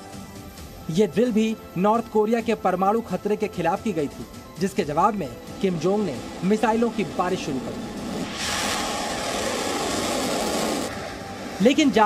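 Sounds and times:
rocket motor rushing: 0:05.6 - 0:11.7.

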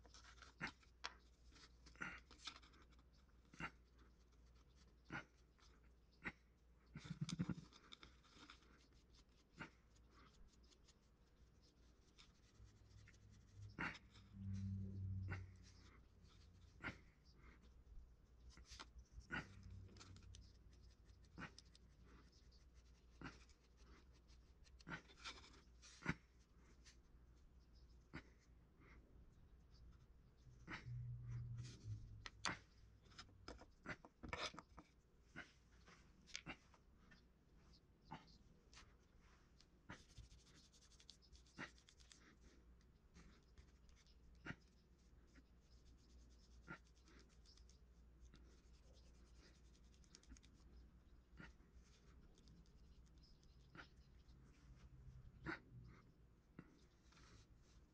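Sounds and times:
tool scratching clay: 0:00.0 - 0:27.1, 0:39.9 - 0:42.6
low steady hum: 0:06.8 - 0:41.3.

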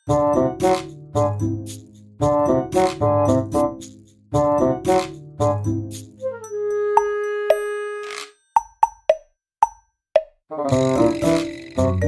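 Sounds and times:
backing music track: 0:00.1 - 0:08.2, 0:10.6 - 0:12.0.

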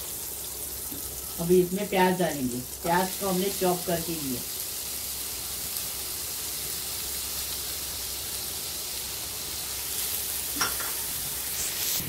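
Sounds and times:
onion sizzling in butter: 0:00.0 - 0:12.0.

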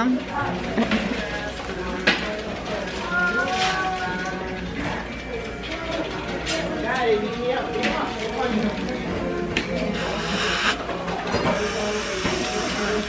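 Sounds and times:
indistinct background voices: 0:00.3 - 0:13.0.

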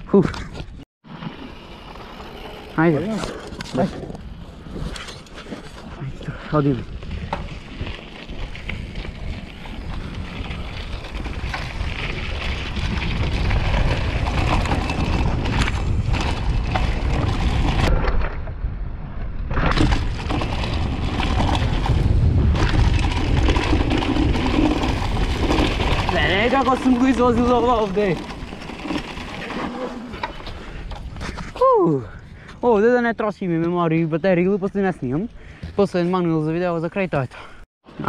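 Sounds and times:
bike tyres rattling over dirt: 0:00.1 - 0:18.4, 0:19.5 - 0:31.6
wind buffeting microphone: 0:05.9 - 0:32.8.

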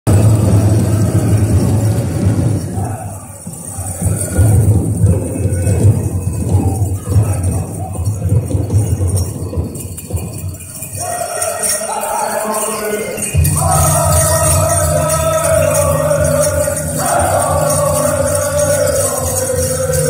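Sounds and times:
group singing: 0:00.1 - 0:09.2, 0:10.7 - 0:20.0
big drum beating: 0:00.1 - 0:10.9
jingling bells: 0:00.1 - 0:20.0.

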